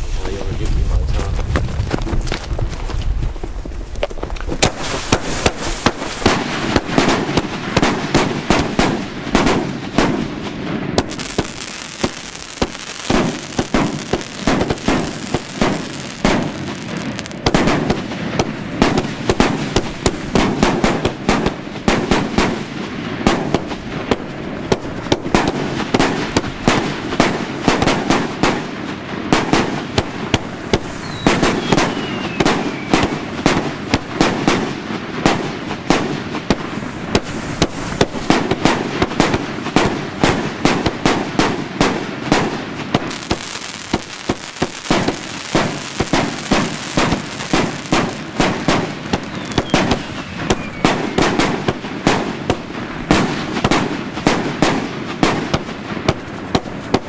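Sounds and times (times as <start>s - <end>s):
firework battery firing: 3.9s - 57.0s.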